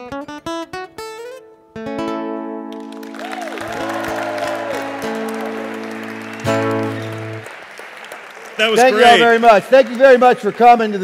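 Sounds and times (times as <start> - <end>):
acoustic guitar chord strummed: 0.0 - 7.5
audience applause: 2.8 - 11.0.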